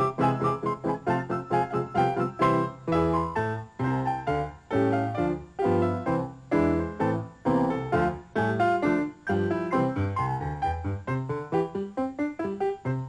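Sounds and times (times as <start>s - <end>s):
piano duet: 0.0s - 13.0s.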